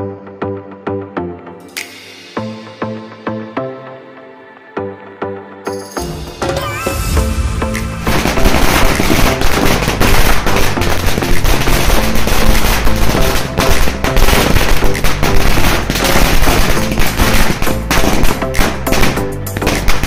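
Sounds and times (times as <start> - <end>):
loud music with steady bass: 1.2 - 4.0, 6.1 - 20.0
firecrackers cracking: 7.8 - 20.0.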